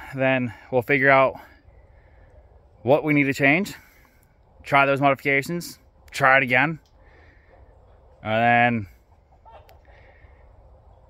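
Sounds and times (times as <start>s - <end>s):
man speaking softly: 8.2s - 9.0s.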